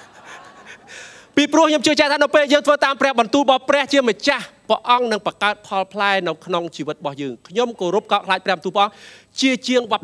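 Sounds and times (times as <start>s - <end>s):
man breathing into microphone: 0.3s - 1.4s, 8.9s - 9.4s
man speaking: 1.3s - 10.0s.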